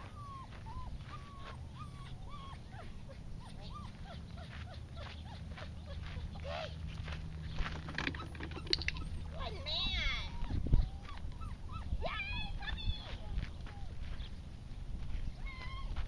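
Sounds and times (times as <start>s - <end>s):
dog whining: 0.0s - 6.8s, 7.8s - 12.8s, 15.4s - 16.0s.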